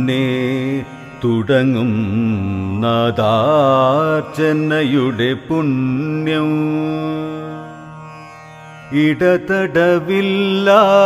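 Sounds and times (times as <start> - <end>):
man singing: 0.0 - 7.8, 8.9 - 11.0.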